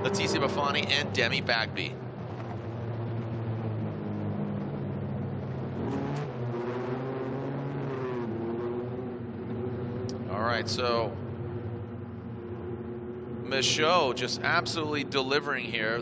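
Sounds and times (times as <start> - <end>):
race vehicle engines revving: 0.0 - 16.0.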